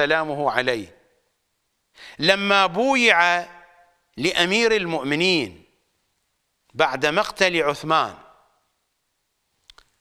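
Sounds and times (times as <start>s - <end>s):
man speaking: 0.0s - 1.0s, 2.1s - 5.7s, 6.7s - 8.4s
faint mouth clicks: 9.6s - 10.0s.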